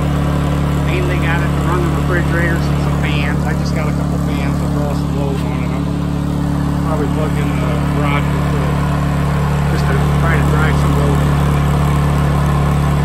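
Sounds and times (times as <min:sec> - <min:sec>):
generator engine running: 0:00.0 - 0:13.0.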